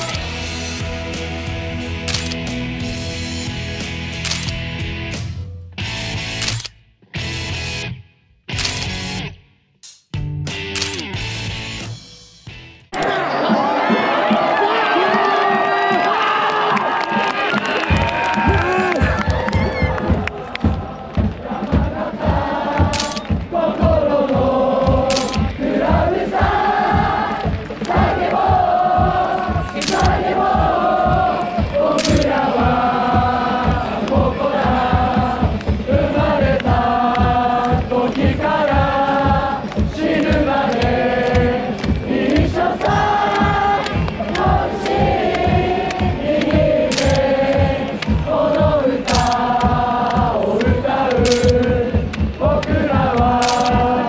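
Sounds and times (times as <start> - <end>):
crowd singing a chant: 0.0 - 2.2, 13.0 - 16.0, 19.9 - 54.0
choppy background music: 0.0 - 6.6, 10.2 - 16.4, 17.1 - 54.0
steady thumping beat: 17.8 - 54.0.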